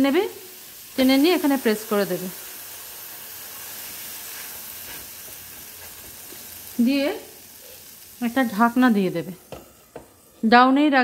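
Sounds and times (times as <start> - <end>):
dough sizzling on hot pan: 0.0 - 10.6.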